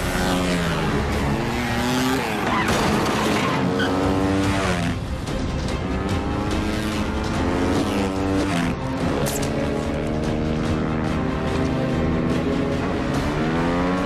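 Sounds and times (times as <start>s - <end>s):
dirt bike engines revving: 0.0s - 14.0s
tyres skidding: 0.0s - 14.0s.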